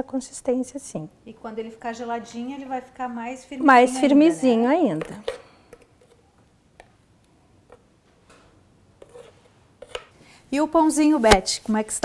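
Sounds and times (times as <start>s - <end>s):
soft scrape: 9.0s - 10.1s.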